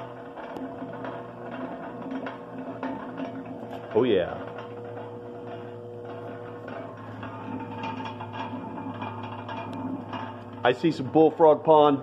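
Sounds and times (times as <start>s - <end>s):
electric motor humming and whining: 0.0s - 12.0s.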